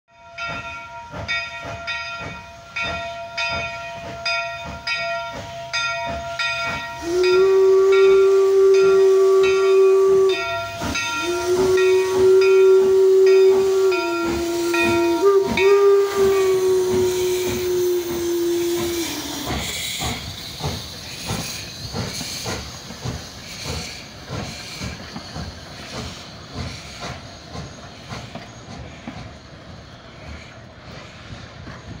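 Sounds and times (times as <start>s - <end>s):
locomotive bell ringing: 0.1s - 21.0s
steam hissing: 0.6s - 32.0s
steam exhaust chuffing: 1.1s - 32.0s
steam whistle blasts: 6.3s - 24.0s.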